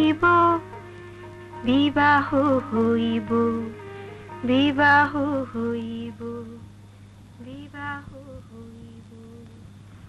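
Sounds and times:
steady low hum: 0.0 - 10.0
person humming a slow tune: 7.4 - 9.7.

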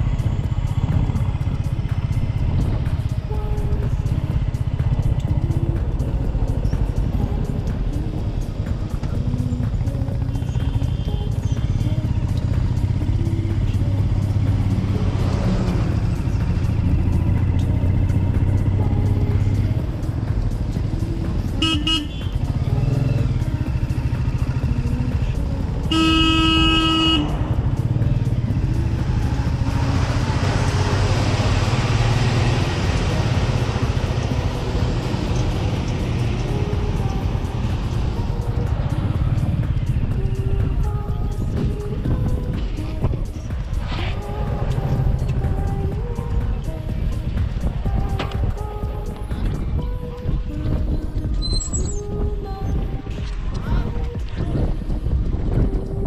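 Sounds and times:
motorcycle engine running: 0.0 - 56.0
vehicle horn toot: 21.6 - 22.4, 25.9 - 27.4
wind on microphone: 36.7 - 56.0.

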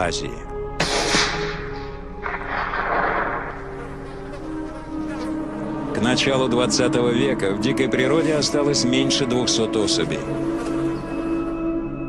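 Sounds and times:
soft background music: 0.0 - 12.0
flies buzzing: 1.4 - 6.0, 9.5 - 11.9.

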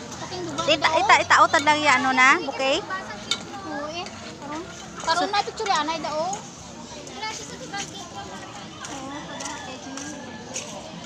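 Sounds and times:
chatter of people and children: 0.0 - 11.0.

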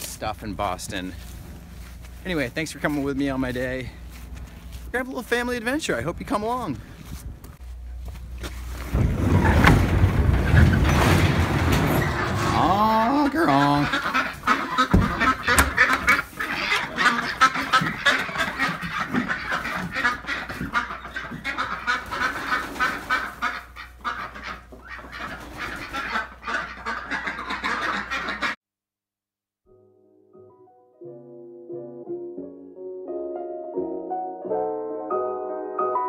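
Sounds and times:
coop door rumbling open: 8.8 - 17.1
ducks quacking: 11.6 - 28.6.

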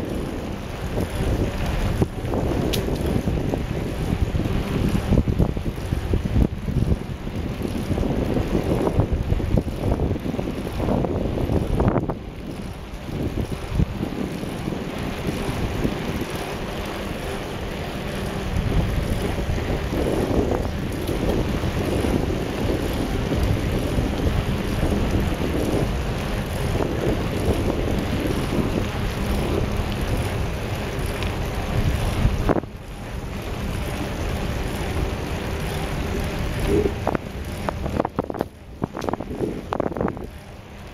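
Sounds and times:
wind buffeting microphone: 0.0 - 40.9.

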